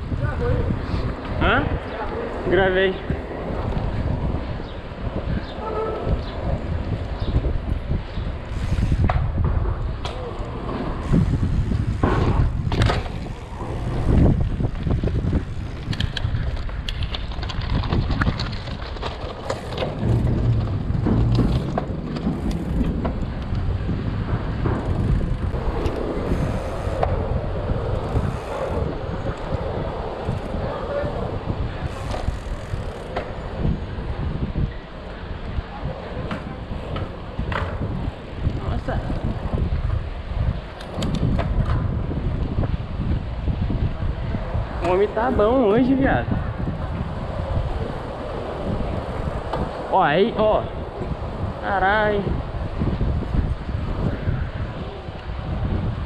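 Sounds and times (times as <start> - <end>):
bike tyre noise: 0.0 - 56.0
wind rushing over microphone: 0.0 - 56.0
bike knocks and rattles: 3.5 - 34.8, 36.2 - 45.7.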